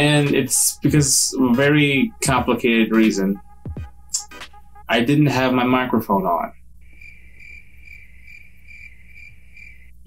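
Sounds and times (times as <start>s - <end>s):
crickets chirping: 6.8s - 10.0s.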